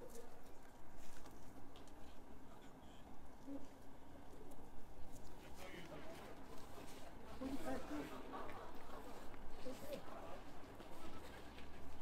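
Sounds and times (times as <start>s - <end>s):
faint voices of people: 2.0s - 12.0s.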